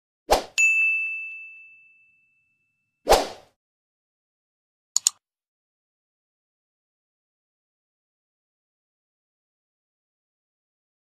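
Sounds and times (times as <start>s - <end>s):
bell-like ding: 0.6s - 3.0s.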